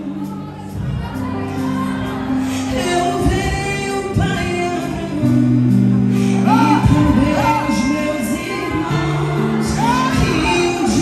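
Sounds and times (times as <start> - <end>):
woman singing gospel song: 0.0 - 11.0.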